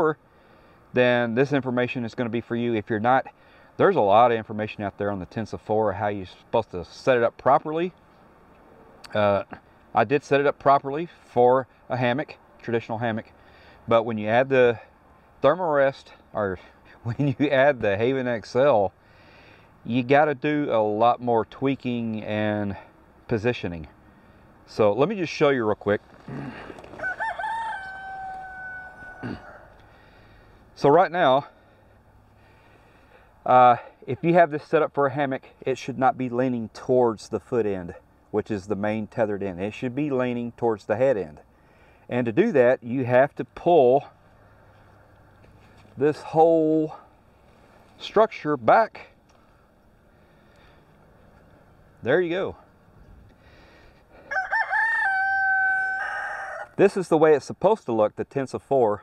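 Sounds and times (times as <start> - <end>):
distant rooster crowing: 26.3 - 29.8, 54.2 - 56.8.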